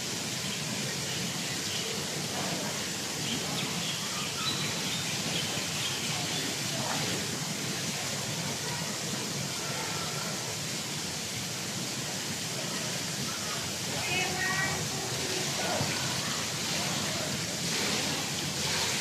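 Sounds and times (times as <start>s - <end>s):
open-air background noise: 0.0s - 19.0s.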